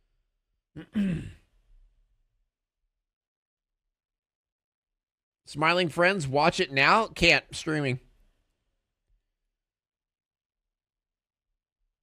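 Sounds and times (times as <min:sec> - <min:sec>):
man sighing: 0:00.8 - 0:01.4.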